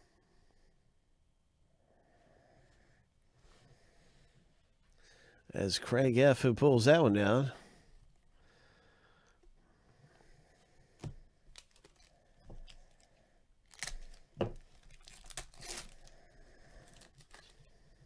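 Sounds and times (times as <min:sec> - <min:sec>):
foil wrapper ripping and crinkling: 0:11.5 - 0:13.0, 0:13.6 - 0:16.2, 0:16.8 - 0:17.6.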